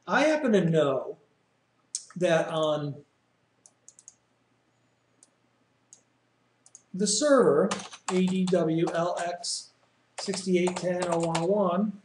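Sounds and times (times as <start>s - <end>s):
computer mouse clicks: 3.6s - 4.2s, 5.2s - 6.9s.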